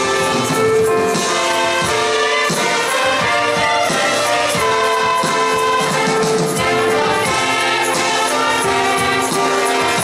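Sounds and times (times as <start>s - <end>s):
strings and brass playing hymn: 0.0s - 10.0s
voices singing: 1.2s - 10.0s.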